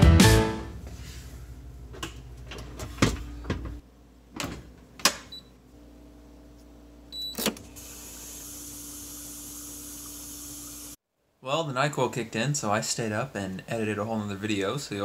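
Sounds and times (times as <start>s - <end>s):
water hissing: 7.8s - 11.0s.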